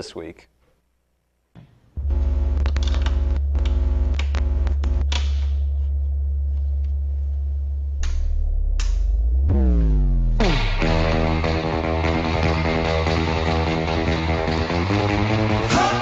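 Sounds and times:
guitar amplifier mains hum: 0.0s - 15.7s
buzzing crackles: 2.0s - 7.1s
sharp clicks: 2.6s - 5.5s, 8.0s - 9.1s.

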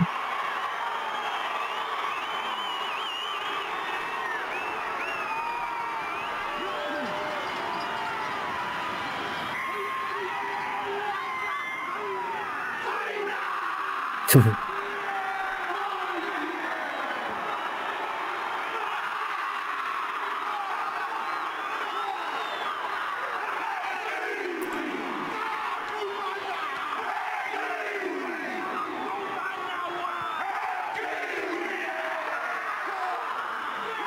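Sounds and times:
stadium crowd cheering: 0.0s - 34.0s
men chanting and shouting in unison: 14.3s - 14.6s.

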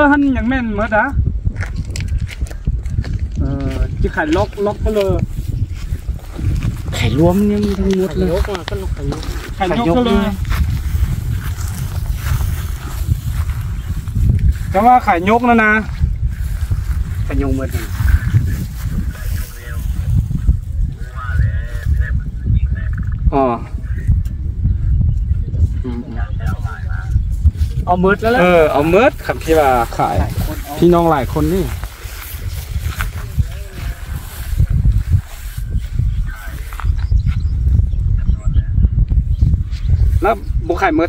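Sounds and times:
wind buffeting microphone: 0.0s - 41.0s
man's voice: 6.4s - 10.7s, 17.2s - 24.3s, 25.5s - 35.3s, 36.1s - 36.9s.

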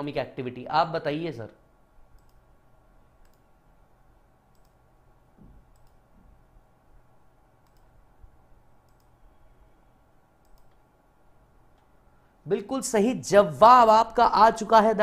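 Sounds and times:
low steady hum: 0.0s - 15.0s
faint sharp clicks: 2.2s - 2.4s, 3.2s - 3.4s, 4.5s - 4.8s, 5.7s - 6.0s, 7.6s - 7.9s, 8.8s - 9.2s, 10.4s - 10.8s.

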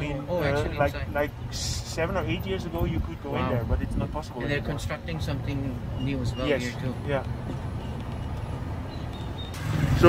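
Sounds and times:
road and tyre rumble: 0.0s - 10.0s.

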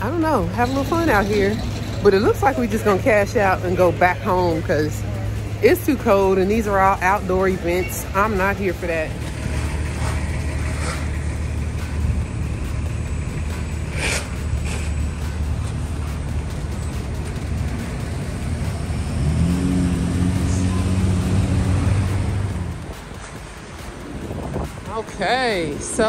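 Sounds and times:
deep steady engine drone: 0.0s - 26.0s
traffic rumble on wet road: 0.0s - 26.0s.

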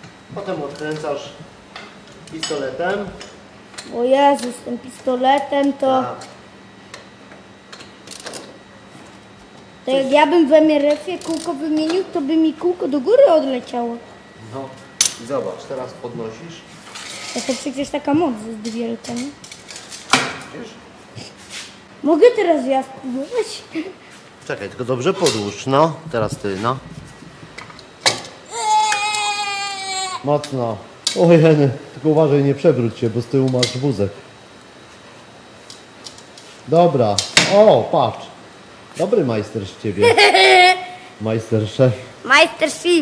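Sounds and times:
child's high straining cry: 28.5s - 30.3s.

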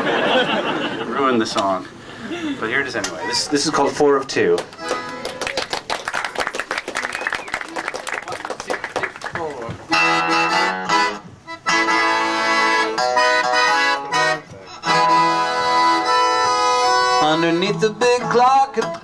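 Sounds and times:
piano accordion chords: 4.7s - 5.3s, 9.9s - 19.0s
acoustic guitar: 9.8s - 19.0s.

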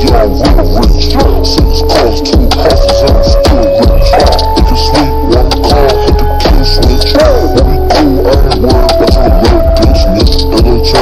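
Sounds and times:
slowed trap hip-hop song: 0.0s - 11.0s.

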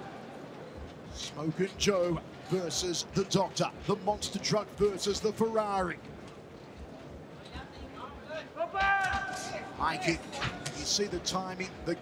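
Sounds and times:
man's voice: 1.2s - 6.0s, 9.8s - 12.0s.

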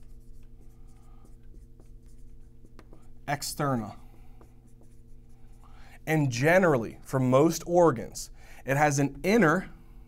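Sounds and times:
marker scratching on whiteboard: 0.0s - 6.7s
steady low hum: 0.0s - 10.0s
marker tapping on whiteboard: 1.3s - 3.1s, 4.0s - 5.2s.

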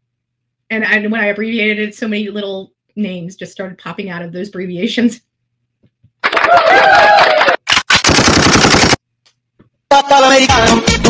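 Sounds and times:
rapid gunfire: 7.7s - 9.0s.

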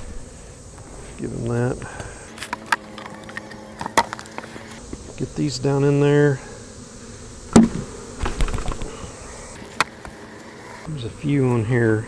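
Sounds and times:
honey bees humming: 0.0s - 12.0s
beehive parts knocking and clicking: 1.8s - 5.2s, 7.5s - 9.0s.

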